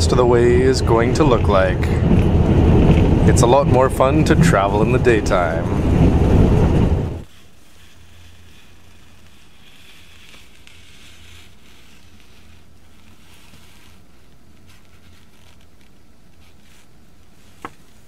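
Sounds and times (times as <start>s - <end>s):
low hum: 0.0s - 7.3s
train running noise at speed: 0.0s - 7.3s.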